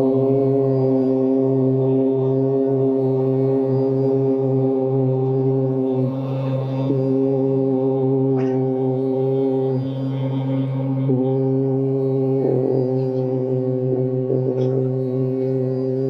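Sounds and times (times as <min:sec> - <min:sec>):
group chanting om in unison: 0:00.0 - 0:16.0.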